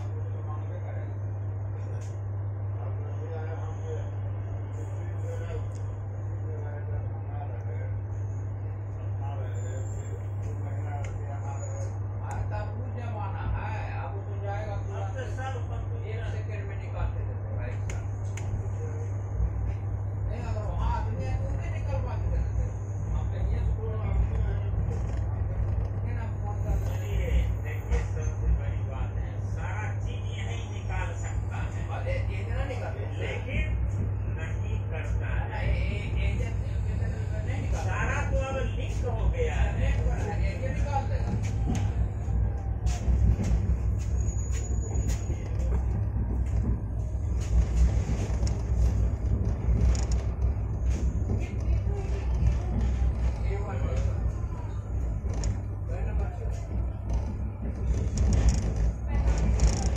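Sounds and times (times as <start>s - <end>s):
people talking: 0.0s - 59.9s
vehicle rumbling slowly: 0.0s - 59.9s.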